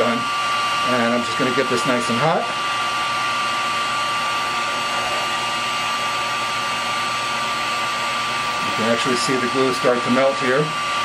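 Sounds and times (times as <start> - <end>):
heat gun blowing air: 0.0 - 11.0.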